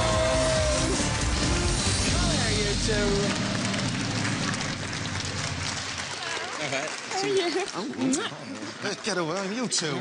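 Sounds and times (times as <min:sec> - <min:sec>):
audience applauding and cheering: 0:00.0 - 0:10.0.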